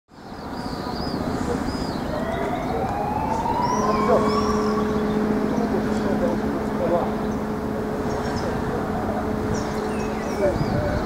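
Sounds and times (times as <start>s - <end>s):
outdoor background noise: 0.1s - 11.0s
steady low hum: 1.2s - 11.0s
siren-like wail rising in pitch: 2.0s - 10.2s.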